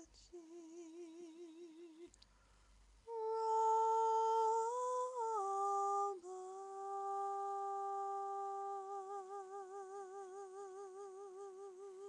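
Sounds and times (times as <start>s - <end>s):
woman singing a long note: 0.0s - 2.1s, 3.1s - 12.0s.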